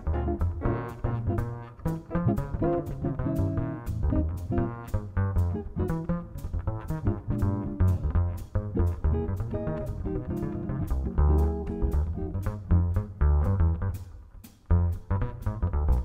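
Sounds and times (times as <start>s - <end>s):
piano: 0.0s - 5.0s
electric guitar: 0.0s - 14.1s
upright bass walking line: 0.0s - 16.0s
drums with cymbal strikes: 1.9s - 15.7s.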